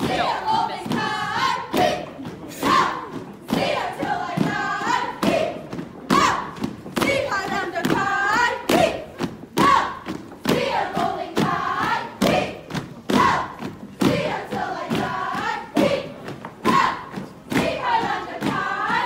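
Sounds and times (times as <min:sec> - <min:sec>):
women chanting in unison: 0:00.0 - 0:19.0.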